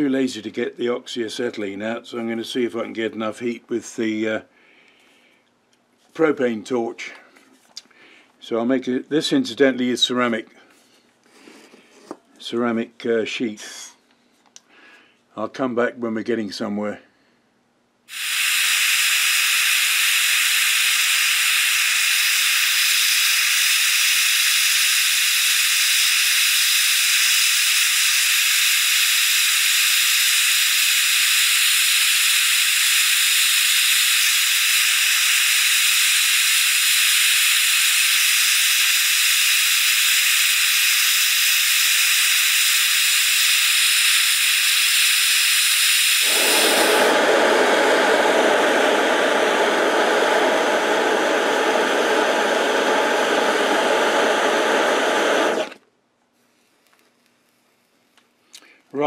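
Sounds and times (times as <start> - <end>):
propane torch flame hissing: 18.1 - 55.8.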